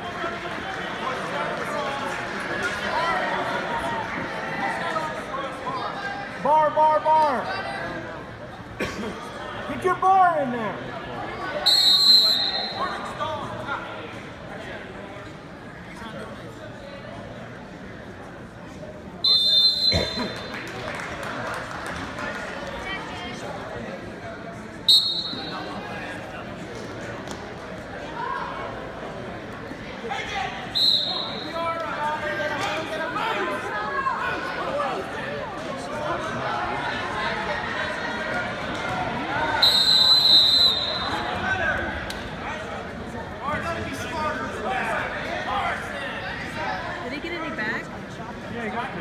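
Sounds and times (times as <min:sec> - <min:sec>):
crowd chatter: 0:00.0 - 0:49.0
referee's whistle blast: 0:11.7 - 0:12.9, 0:19.3 - 0:20.5, 0:24.9 - 0:25.7, 0:30.8 - 0:31.6, 0:39.6 - 0:41.2.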